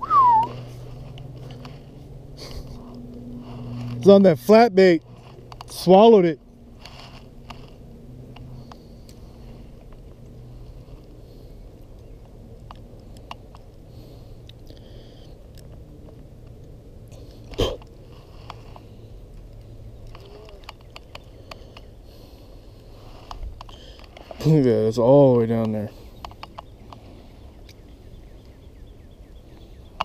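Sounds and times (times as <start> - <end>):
low steady hum: 0.0 - 30.0
handling clicks and rustles: 0.4 - 14.6, 15.4 - 27.8.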